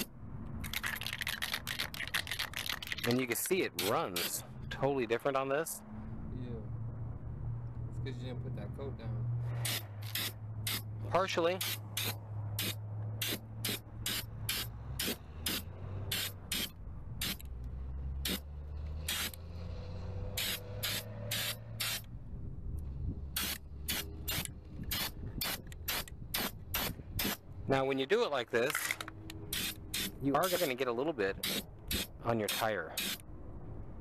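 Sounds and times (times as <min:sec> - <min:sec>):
spray-paint can hissing in bursts: 0:09.6 - 0:10.8, 0:11.6 - 0:17.4, 0:18.2 - 0:18.4, 0:19.0 - 0:19.3, 0:20.4 - 0:22.1, 0:23.4 - 0:27.4, 0:29.5 - 0:30.8, 0:31.4 - 0:33.2.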